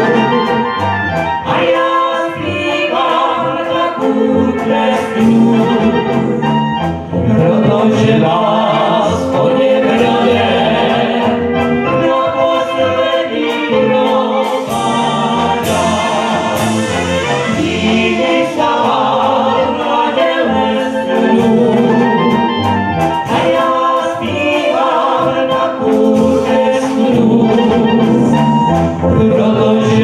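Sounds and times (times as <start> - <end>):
brass band playing: 0.0 - 30.0
group singing into microphones: 0.0 - 30.0.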